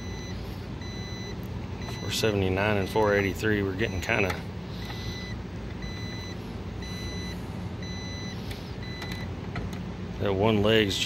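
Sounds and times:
electronic beeper beeps: 0.0 - 2.2, 4.9 - 9.3
low steady hum: 0.0 - 11.0.

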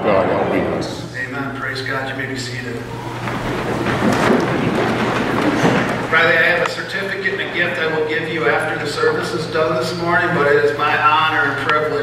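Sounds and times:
wooden pews creaking and knocking: 1.1 - 12.0
rustle of people sitting down: 2.0 - 7.4.

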